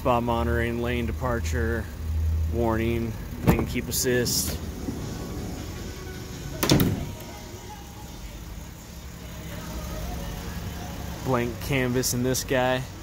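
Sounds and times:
faint background music: 0:00.0 - 0:13.0
low steady hum: 0:00.0 - 0:13.0
van door thump: 0:03.4 - 0:05.7, 0:06.5 - 0:07.2.

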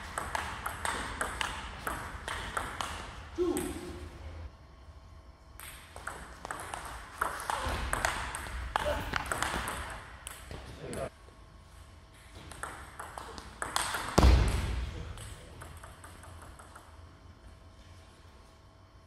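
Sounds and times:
ping pong ball clicking: 0:00.0 - 0:03.0, 0:05.6 - 0:10.5, 0:12.5 - 0:14.2, 0:15.2 - 0:17.0.

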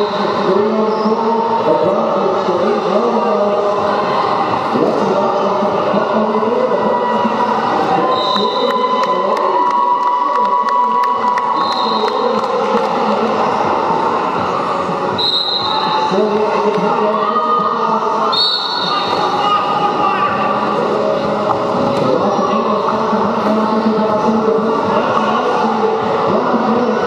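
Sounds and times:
spectators shouting and chanting: 0:00.0 - 0:27.0.

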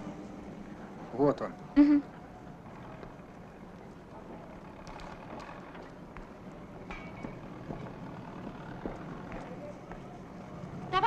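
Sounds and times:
construction site noise: 0:00.0 - 0:11.0.

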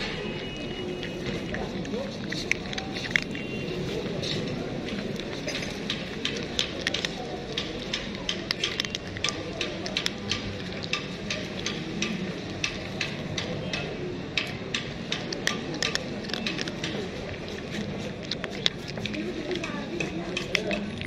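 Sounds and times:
cat crunching dry kibble: 0:00.0 - 0:21.0
street noise: 0:00.0 - 0:21.0.

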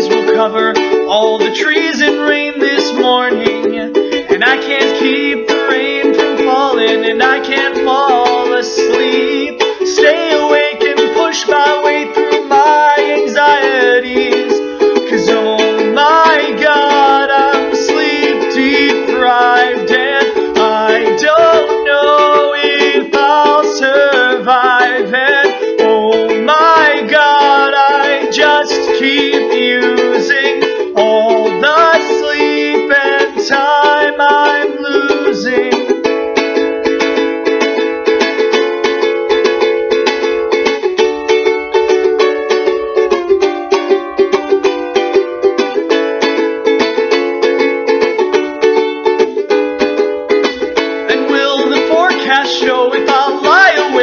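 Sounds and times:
man singing: 0:00.0 - 0:36.2, 0:50.5 - 0:54.0
ukulele strumming chords: 0:00.0 - 0:54.0.

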